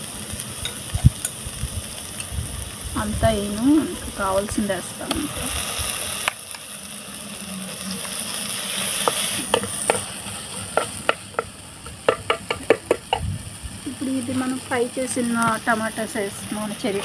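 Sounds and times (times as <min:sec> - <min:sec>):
onions sizzling in oil: 0:00.0 - 0:17.0.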